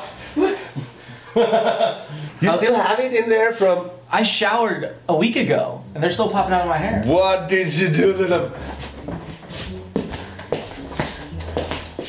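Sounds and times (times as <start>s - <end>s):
background music: 5.6s - 12.0s
footsteps on hard floor: 8.5s - 12.0s.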